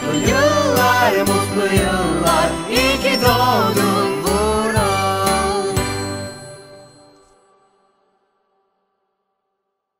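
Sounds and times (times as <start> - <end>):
closing chord of a celebration tune: 0.0 - 5.2
bell-like tones: 0.0 - 8.0.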